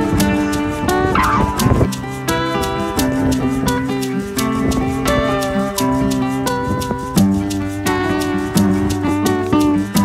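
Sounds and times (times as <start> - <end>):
plucked-string music: 0.0 - 10.0.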